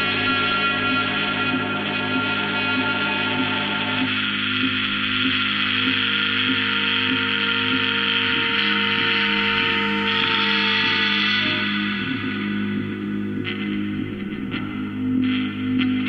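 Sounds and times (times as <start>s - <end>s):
ambient drone music: 0.0s - 16.0s
hissing high band: 0.0s - 16.0s.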